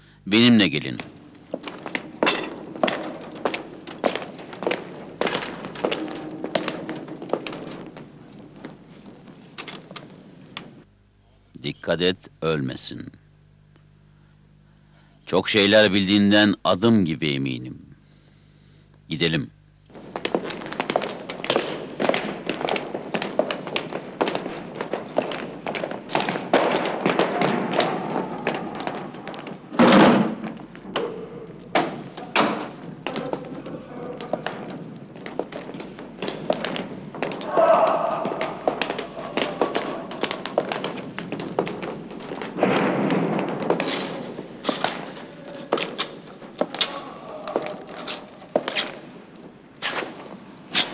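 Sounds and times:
footsteps: 0:00.0 - 0:10.9, 0:19.9 - 0:50.9
metal gear clinking: 0:01.0 - 0:10.1, 0:20.1 - 0:29.6, 0:30.2 - 0:48.9
heavy thud: 0:19.9 - 0:45.5.

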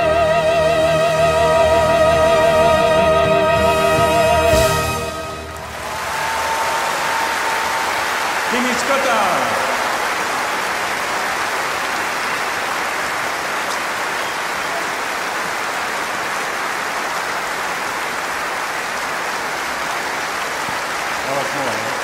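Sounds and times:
audience applauding: 0:03.7 - 0:22.0
vocal cheer: 0:05.6 - 0:10.7.

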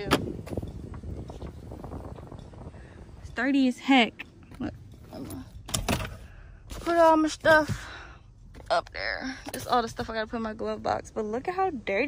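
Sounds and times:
wind rumble on microphone: 0:00.0 - 0:06.1.

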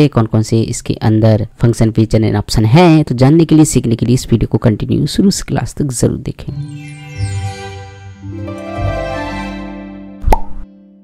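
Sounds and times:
logo jingle held tones: 0:06.6 - 0:10.0
short pop sound effect: 0:10.2 - 0:10.7.

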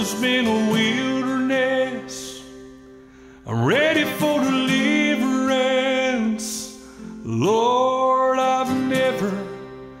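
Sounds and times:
man singing gospel song: 0:00.0 - 0:02.7, 0:03.4 - 0:10.0
strummed acoustic guitar: 0:00.0 - 0:10.0.

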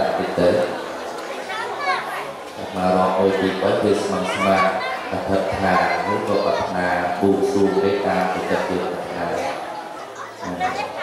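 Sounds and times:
people speaking in a hall: 0:00.0 - 0:11.0.

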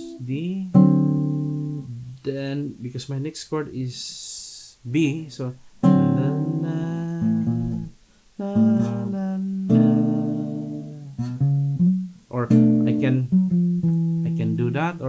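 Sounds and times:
acoustic guitar chords: 0:00.0 - 0:02.2, 0:05.0 - 0:15.0.

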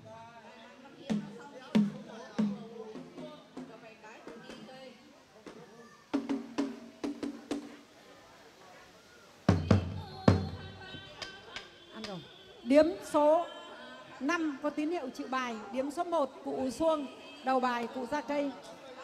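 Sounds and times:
hand drum beats: 0:09.5 - 0:10.7.

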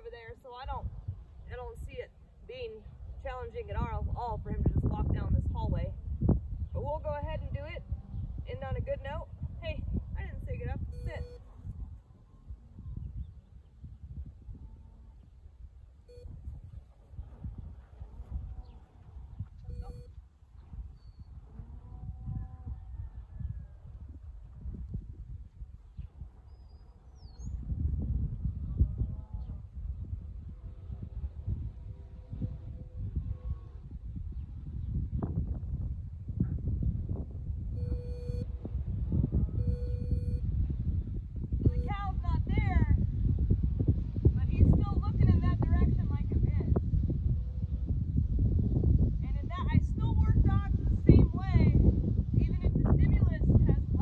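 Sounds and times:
wind rumbling on microphone: 0:00.0 - 0:54.0
short electronic beeps: 0:10.9 - 0:11.5, 0:16.1 - 0:16.4, 0:19.7 - 0:20.1, 0:37.8 - 0:38.5, 0:39.6 - 0:40.4.

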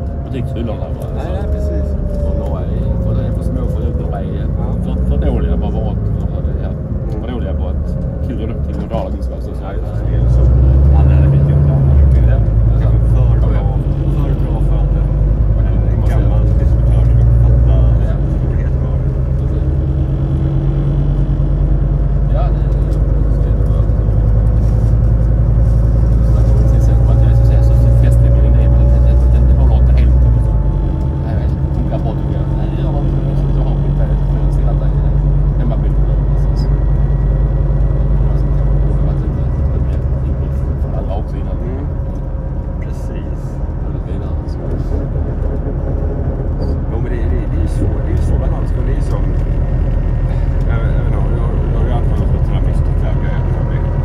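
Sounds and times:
bus engine and road rumble: 0:00.0 - 0:54.0
faint rising whines: 0:00.0 - 0:54.0.

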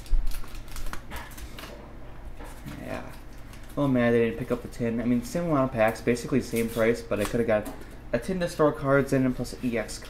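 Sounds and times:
foil wrapper crinkling: 0:00.0 - 0:01.7, 0:02.5 - 0:04.8.

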